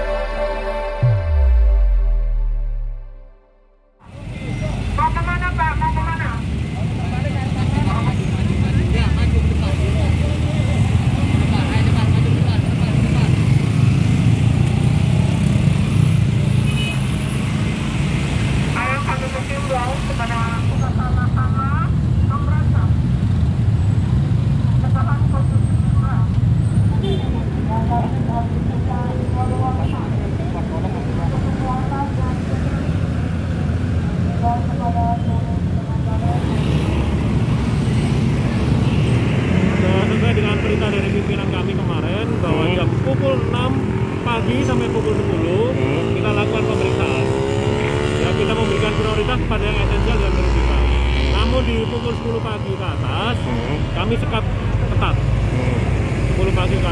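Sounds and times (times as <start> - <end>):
slow road traffic rumble: 4.0 - 56.9.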